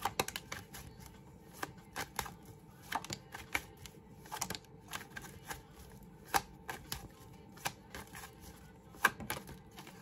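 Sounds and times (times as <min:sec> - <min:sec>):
cards clicking and snapping: 0:00.0 - 0:08.4.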